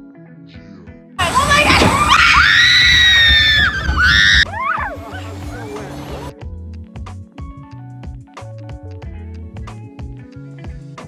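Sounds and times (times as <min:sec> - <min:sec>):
loud rushing water: 0:01.2 - 0:06.3
riders screaming: 0:01.2 - 0:06.3.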